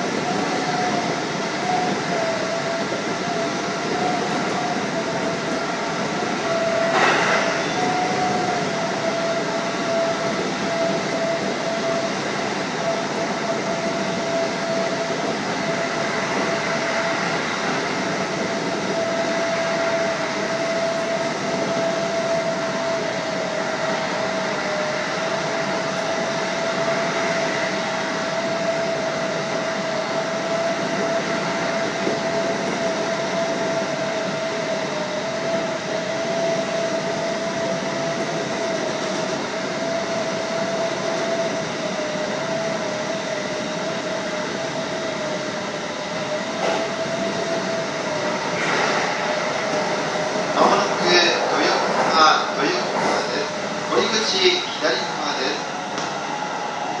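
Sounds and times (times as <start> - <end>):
train motor whine: 0.0 - 57.0
train wheels rumbling: 0.0 - 57.0.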